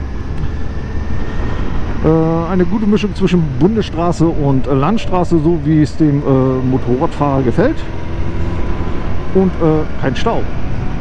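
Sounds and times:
motorcycle engine and wind noise: 0.0 - 11.0.

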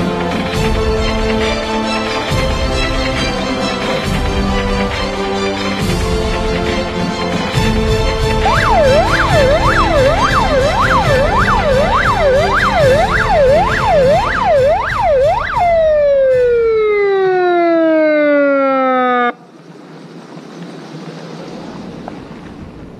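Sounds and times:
music with steady beat: 0.0 - 17.6
siren sweeping up and down: 8.4 - 19.4.

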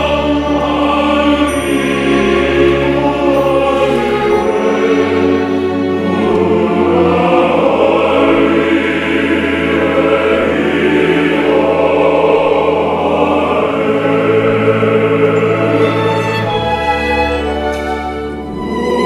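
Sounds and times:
men's choir singing: 0.0 - 19.0.

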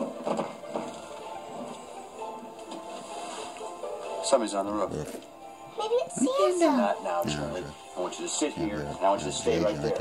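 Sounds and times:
soft film score music: 0.0 - 10.0.

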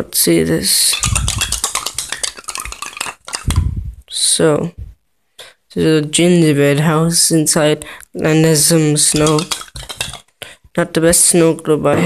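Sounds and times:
snow globe rattling: 0.7 - 3.7, 9.0 - 10.3.

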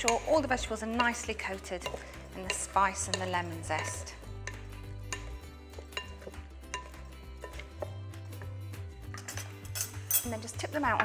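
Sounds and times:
spoon scraping glass bowl: 0.0 - 8.5, 9.1 - 10.4
background music with bass: 0.0 - 11.0.

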